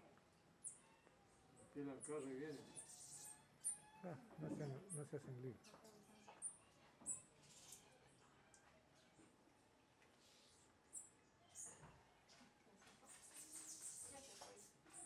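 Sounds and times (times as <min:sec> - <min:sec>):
hummingbird chirps: 0:02.1 - 0:03.8, 0:13.2 - 0:15.0.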